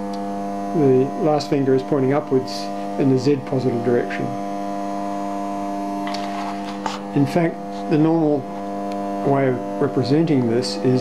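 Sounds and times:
milling machine electrical hum: 0:00.0 - 0:11.0.

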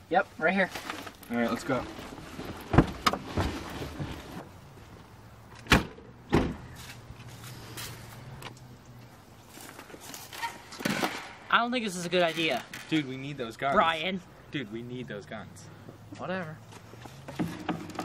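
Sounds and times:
car doors slamming: 0:05.6 - 0:06.7.

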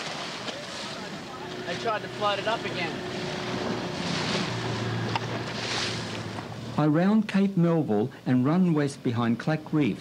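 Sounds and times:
outboard motor running: 0:00.0 - 0:06.8
water rushing past hull: 0:00.0 - 0:06.8.

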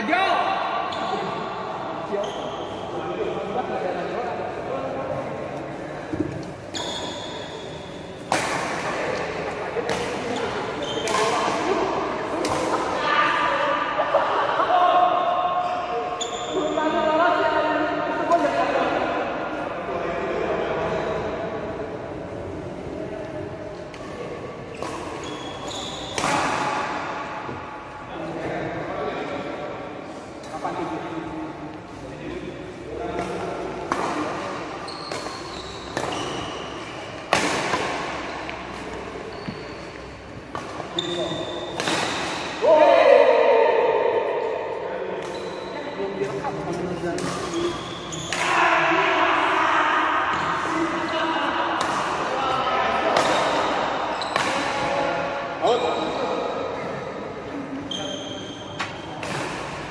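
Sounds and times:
players' voices: 0:00.0 - 0:59.9
rackets smacking shuttlecock: 0:08.2 - 0:12.9, 0:33.2 - 0:42.6.

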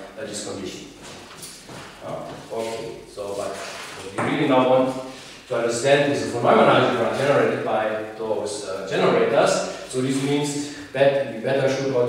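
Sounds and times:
man speaking: 0:00.0 - 0:01.0, 0:02.0 - 0:12.0.

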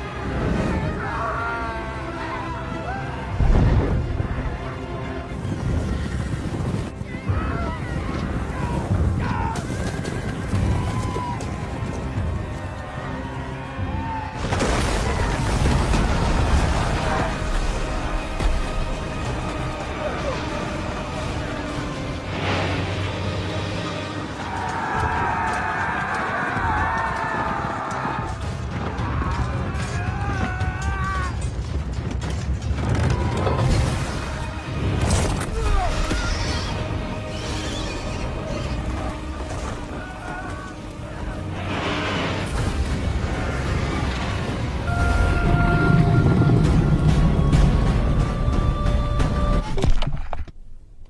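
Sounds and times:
dramatic trailer music: 0:00.0 - 0:50.1.

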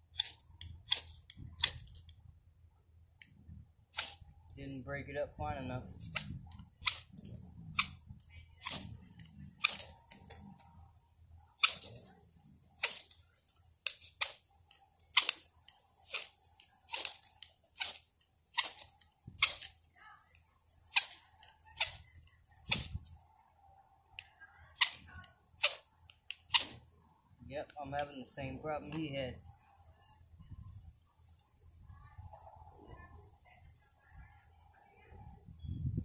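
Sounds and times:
knife scraping fire steel: 0:00.1 - 0:02.1, 0:03.9 - 0:04.3, 0:05.8 - 0:10.8, 0:11.6 - 0:12.2, 0:12.8 - 0:13.2, 0:13.8 - 0:19.8, 0:20.8 - 0:23.2, 0:24.8 - 0:26.8.

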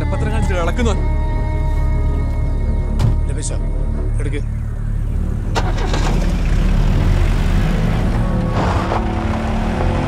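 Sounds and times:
car engine rumbling: 0:02.1 - 0:10.0
road noise: 0:04.0 - 0:10.0.

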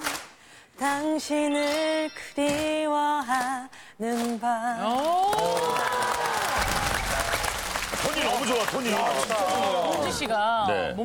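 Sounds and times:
woman singing a cappella: 0:00.8 - 0:05.0
audience applauding: 0:04.8 - 0:10.3.

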